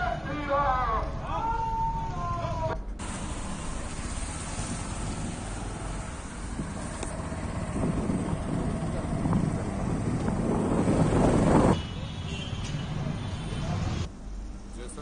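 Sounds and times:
traffic: 0.0s - 15.0s
vehicle road noise: 0.0s - 15.0s
wind on microphone: 4.5s - 11.8s.

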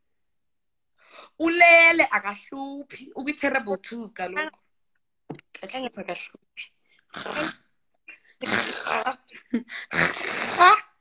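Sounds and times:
woman making raspy sounds: 7.1s - 11.0s.

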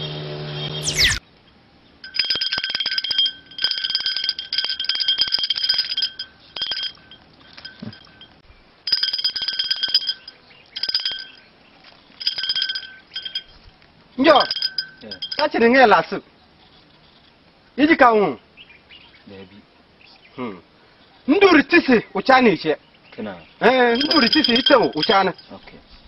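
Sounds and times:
small metal bells jingling: 2.0s - 15.9s, 23.6s - 25.8s.

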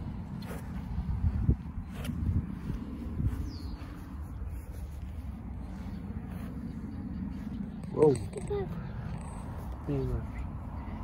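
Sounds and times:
wind buffeting the microphone: 0.0s - 11.0s.

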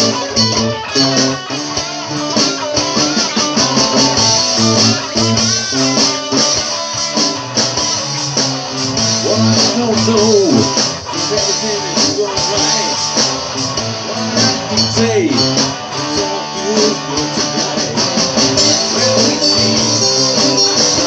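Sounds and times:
bass groove: 0.0s - 21.0s
electric guitar with string bends: 0.0s - 21.0s.

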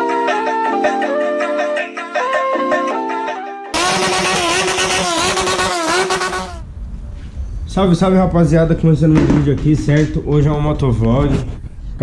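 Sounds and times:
motorcycle engine revving high: 3.8s - 6.6s.

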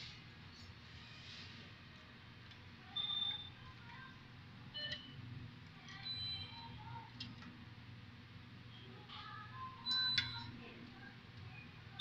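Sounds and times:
low hum of store equipment: 0.0s - 12.0s.

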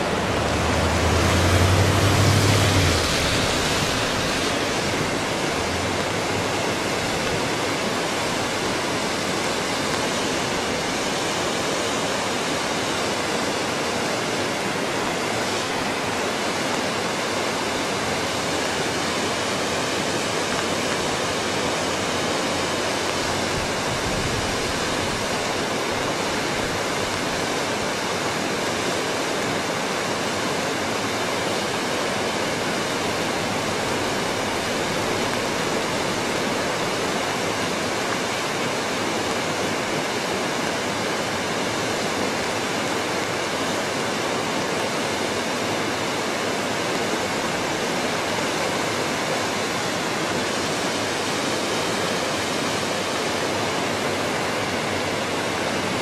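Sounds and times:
river water rushing: 0.0s - 56.0s.

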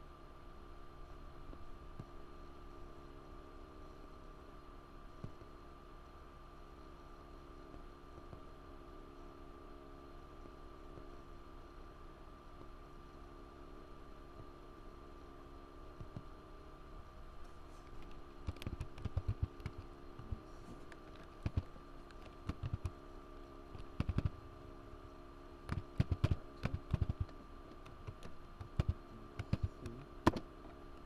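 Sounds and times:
electrical hum with whine: 0.0s - 31.0s.

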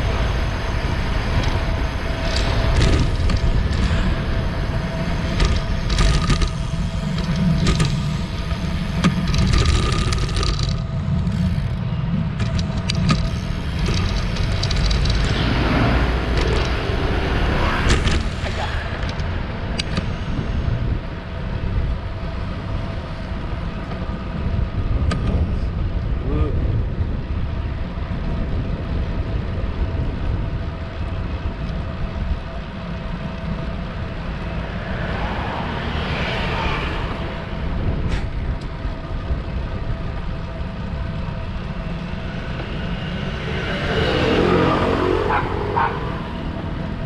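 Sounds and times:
passing vehicle sounds: 0.0s - 26.0s, 27.5s - 47.0s
rumbling wind noise: 0.0s - 47.0s.

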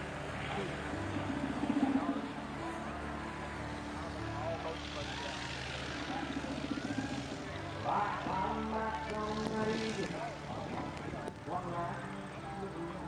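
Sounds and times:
background voices: 0.0s - 13.0s
propeller airplane engine running: 0.0s - 13.0s.

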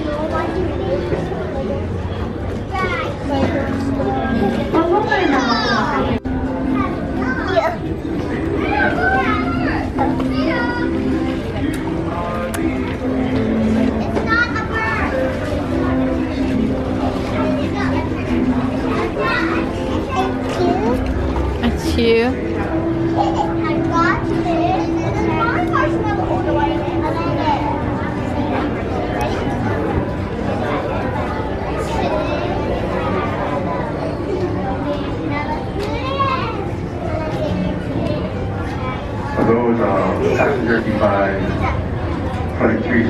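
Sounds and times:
children chattering and squealing: 0.0s - 43.0s.

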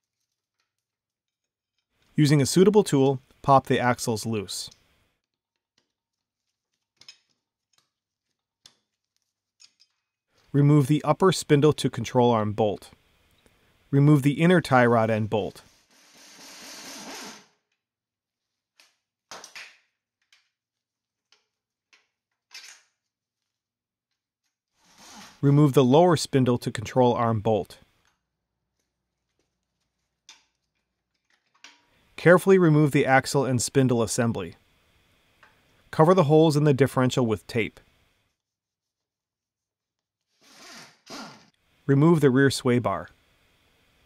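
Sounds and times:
duct tape ripping off roll: 15.9s - 17.6s, 40.3s - 41.5s.

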